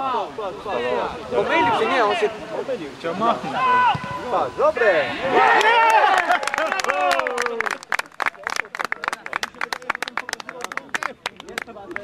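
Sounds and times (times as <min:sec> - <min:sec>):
people clapping: 0:05.4 - 0:12.0.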